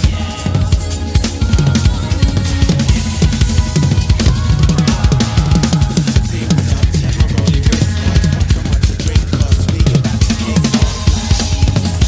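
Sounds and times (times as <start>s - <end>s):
fast drum kit playing: 0.0s - 12.0s
sustained bass notes: 0.0s - 12.0s.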